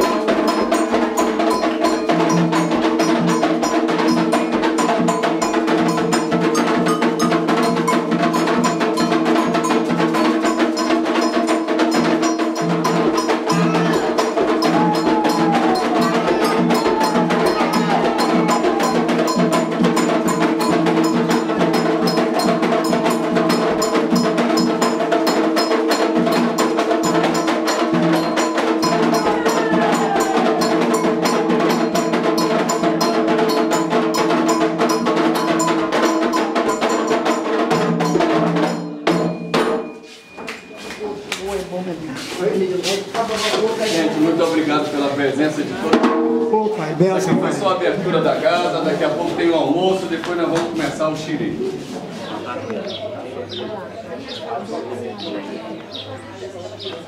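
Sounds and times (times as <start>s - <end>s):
ringing metal bell: 0.0s - 24.8s, 33.8s - 40.8s
hand drums: 0.0s - 52.4s
faint singing voices: 13.2s - 22.4s, 28.5s - 33.3s.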